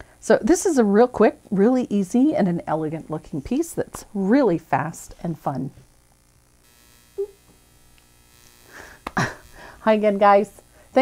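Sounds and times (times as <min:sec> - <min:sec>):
faint electrical hum: 0:00.0 - 0:11.0
breath drawn: 0:08.6 - 0:09.8.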